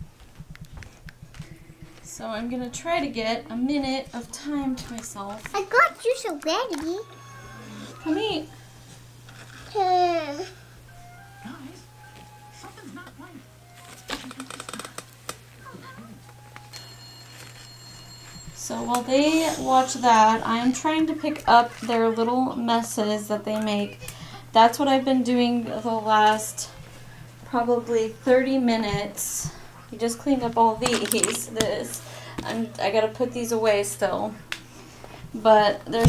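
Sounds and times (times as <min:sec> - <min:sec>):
footsteps on indoor floor: 0:00.0 - 0:02.2
faint steady hum: 0:00.0 - 0:36.0
faint steady high tone: 0:06.7 - 0:08.8, 0:15.6 - 0:20.5.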